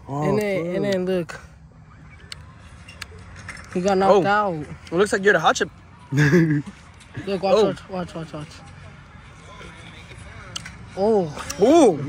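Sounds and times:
faint voices: 0:00.0 - 0:12.0
low outdoor background hum: 0:00.0 - 0:12.0.

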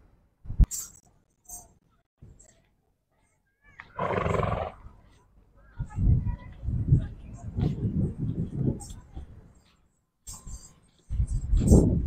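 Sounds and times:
horse neighing: 0:04.0 - 0:04.8.

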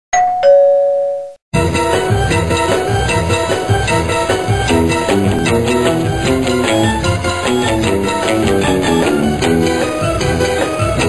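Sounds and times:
two-note doorbell chime: 0:00.2 - 0:01.4
rhythmic music: 0:01.6 - 0:11.0.

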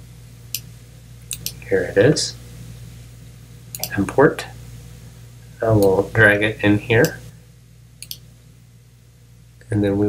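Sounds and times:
faint steady hum: 0:00.0 - 0:10.0
computer mouse clicks: 0:08.0 - 0:08.2.

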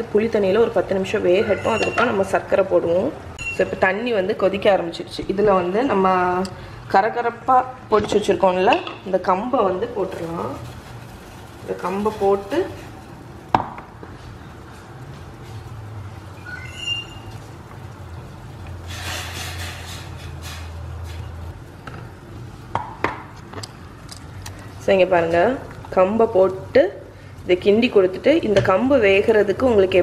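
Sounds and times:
high squeak: 0:01.4 - 0:02.2, 0:16.4 - 0:17.4.

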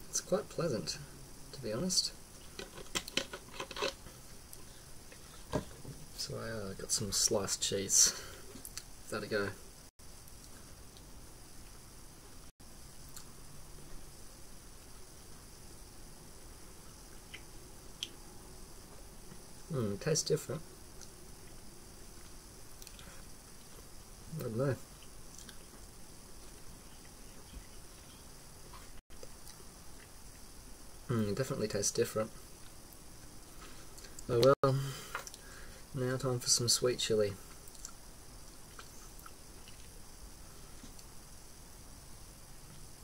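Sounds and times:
soft wet chewing: 0:17.1 - 0:18.2, 0:24.9 - 0:30.5, 0:37.5 - 0:40.0.

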